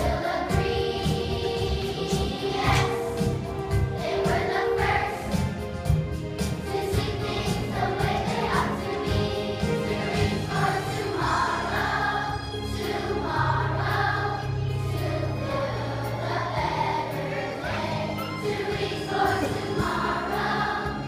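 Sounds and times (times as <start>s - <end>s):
children's choir singing: 0.0s - 21.0s
instrumental accompaniment: 0.0s - 21.0s.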